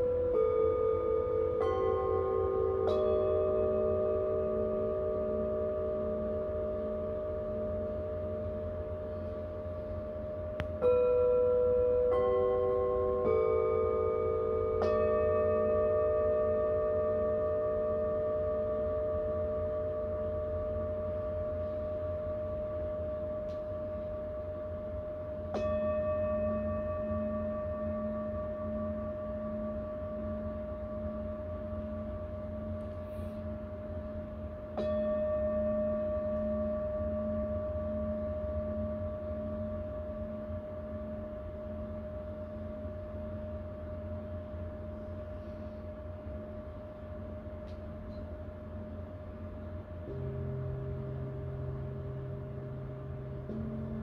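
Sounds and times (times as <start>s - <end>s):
singing bowls ringing: 0.0s - 54.0s.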